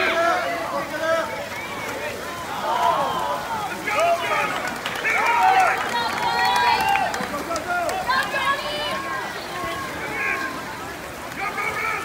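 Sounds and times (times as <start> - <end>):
water splashing: 0.0 - 12.0.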